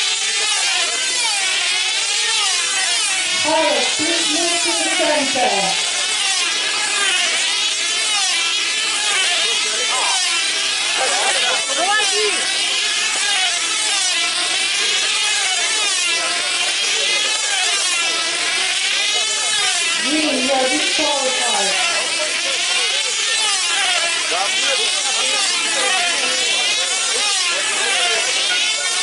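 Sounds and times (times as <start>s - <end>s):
model aircraft engines buzzing: 0.0s - 29.0s.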